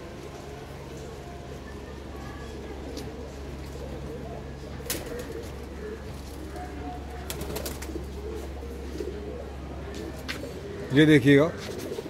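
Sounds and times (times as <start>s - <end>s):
pigeons cooing: 0.0s - 12.0s
steady low hum: 0.0s - 12.0s.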